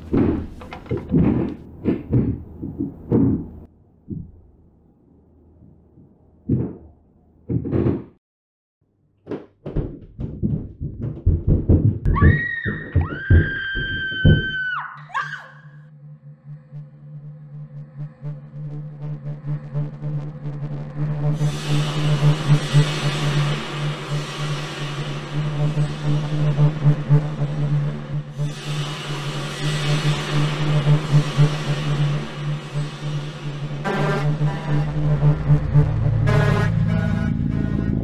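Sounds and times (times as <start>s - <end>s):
horror music low thuds: 0.0s - 4.7s, 9.7s - 14.8s, 15.7s - 38.0s
high-pitched scream: 12.1s - 15.9s
eerie low drone with hiss: 13.6s - 38.0s.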